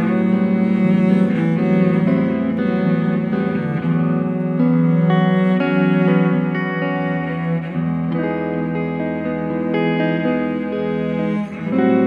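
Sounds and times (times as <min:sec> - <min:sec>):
bowed cello: 0:00.0 - 0:12.0
electric guitar: 0:00.0 - 0:12.0.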